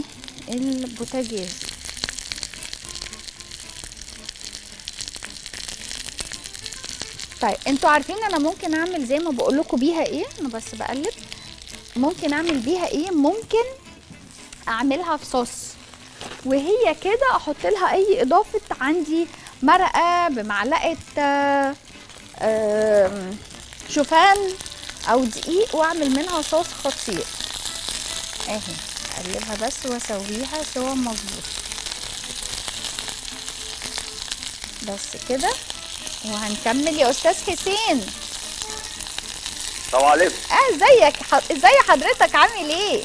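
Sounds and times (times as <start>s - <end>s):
food sizzling in oil: 0.0s - 43.0s.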